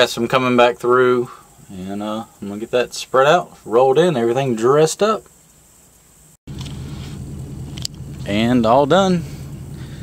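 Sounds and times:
construction machine engine running: 6.5 - 10.0.

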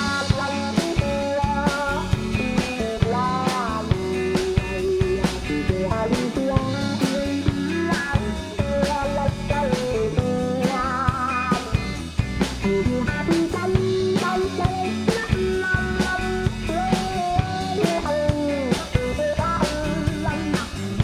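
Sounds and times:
electric guitar lead line: 0.0 - 21.0
rock band playing: 0.0 - 21.0.

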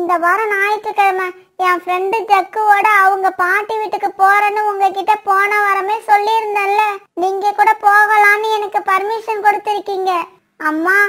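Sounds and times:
high-pitched cartoon voice: 0.0 - 11.0.

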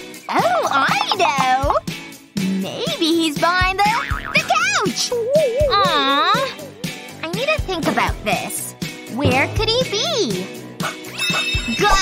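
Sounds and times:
children's background music: 0.0 - 12.0.

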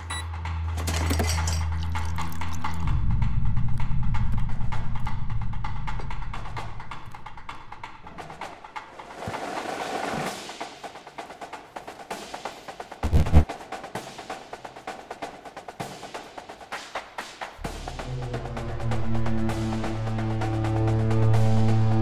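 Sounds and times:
rapid clicking percussion: 0.8 - 19.2
low sustained drone: 17.6 - 22.0.

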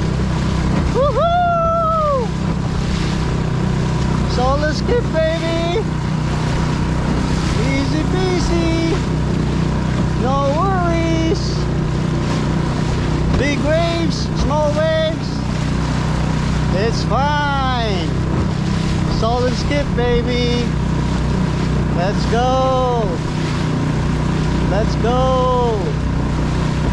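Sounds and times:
outboard motor running: 0.0 - 26.9
wind and water noise: 0.0 - 26.9
man's voice in drawn-out phrases: 4.3 - 5.9, 7.5 - 9.1, 10.2 - 11.7, 13.4 - 15.4, 16.7 - 18.2, 19.1 - 20.7, 21.9 - 23.2, 24.7 - 26.0.

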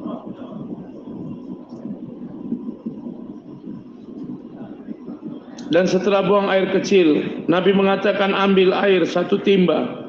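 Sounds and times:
faint muffled speech: 0.0 - 6.3.

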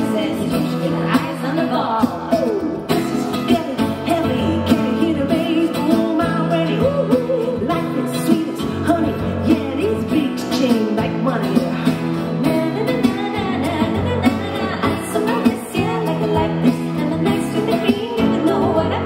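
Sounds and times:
acoustic guitar: 0.0 - 19.0
keyboard: 0.0 - 19.0
woman singing: 0.0 - 19.0.

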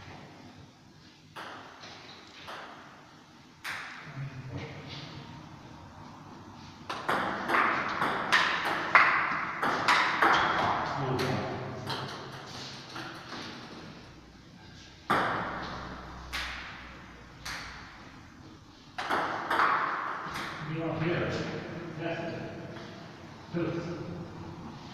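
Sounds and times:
ball bouncing: 1.3 - 2.9, 6.9 - 13.6, 15.1 - 17.9, 19.0 - 20.6.

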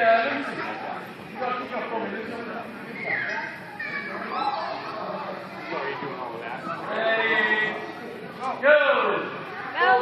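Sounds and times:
children laughing and squealing: 2.9 - 5.2.

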